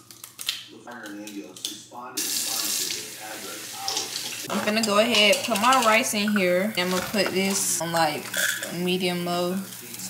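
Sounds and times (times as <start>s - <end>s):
faucet turned on: 2.2s - 8.8s
water running into sink: 2.2s - 10.0s.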